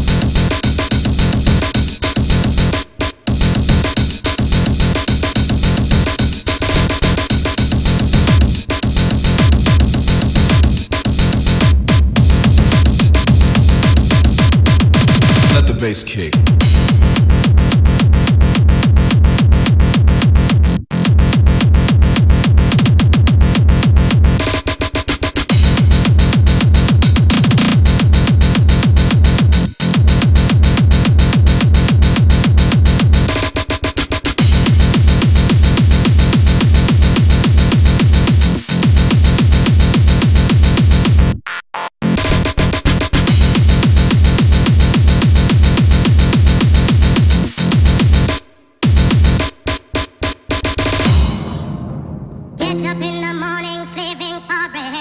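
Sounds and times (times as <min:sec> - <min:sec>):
heavy kick drum: 0:00.0 - 0:24.4, 0:25.5 - 0:33.3, 0:34.4 - 0:41.4, 0:43.2 - 0:49.6, 0:50.9 - 0:52.8
hardcore techno track: 0:00.0 - 0:41.4, 0:42.0 - 0:55.0
electronic dance music: 0:10.5 - 0:17.6, 0:34.4 - 0:41.4, 0:43.3 - 0:49.6, 0:52.6 - 0:55.0.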